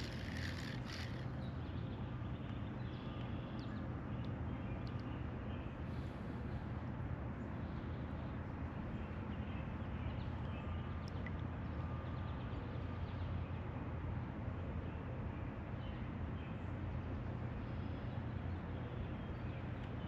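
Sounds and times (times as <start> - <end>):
distant road traffic rumble: 0.0 - 20.0.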